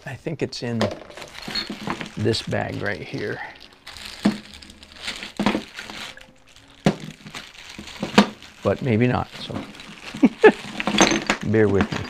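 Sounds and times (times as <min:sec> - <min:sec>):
plastic bag crinkling: 0:00.9 - 0:12.0.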